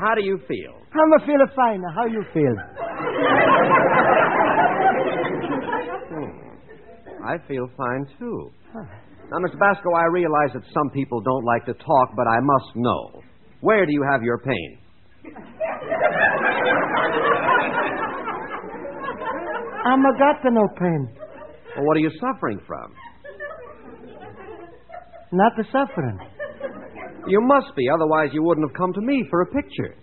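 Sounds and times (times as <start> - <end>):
man speaking: 0.0 - 2.8, 7.1 - 14.8, 19.8 - 22.9, 25.3 - 26.3, 27.3 - 30.0
studio audience laughing: 2.1 - 7.5, 15.2 - 27.9.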